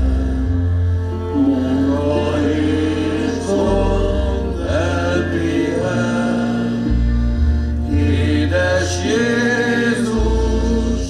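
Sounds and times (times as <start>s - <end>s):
double bass line: 0.0s - 11.0s
village band music: 0.0s - 11.0s.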